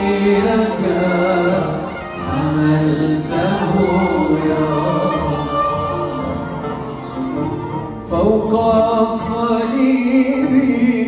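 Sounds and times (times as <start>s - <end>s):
violin: 0.0s - 11.0s.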